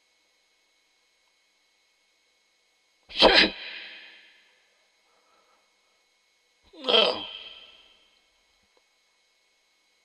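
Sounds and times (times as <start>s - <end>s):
man sneezing: 3.1s - 4.2s, 6.8s - 7.8s.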